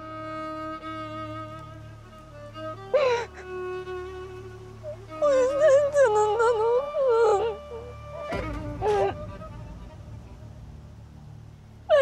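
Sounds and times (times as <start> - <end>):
faint low background noise: 0.0 - 12.0
woman wailing crying: 5.2 - 9.2.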